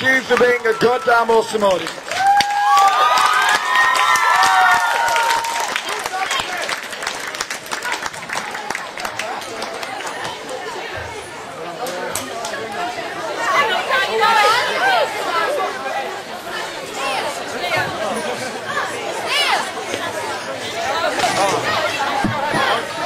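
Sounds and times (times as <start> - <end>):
people chatting: 0.0 - 1.9, 7.8 - 23.0.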